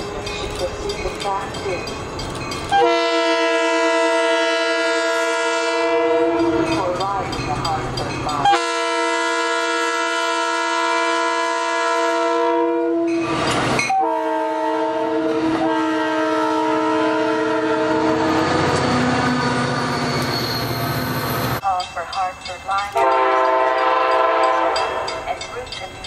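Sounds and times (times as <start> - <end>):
train rumble and wheel noise: 0.0 - 26.0
train horn blasts: 2.7 - 6.6, 8.4 - 13.2, 13.9 - 19.8, 23.0 - 25.4.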